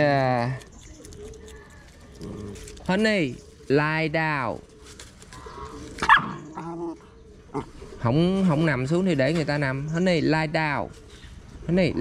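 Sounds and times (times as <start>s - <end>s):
puppy yipping: 6.0s - 6.6s.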